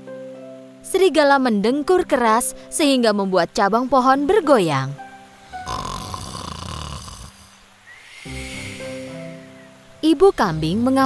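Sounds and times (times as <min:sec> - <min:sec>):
cartoon rattling snore: 0:05.6 - 0:07.5
thin high whistle: 0:07.8 - 0:09.8.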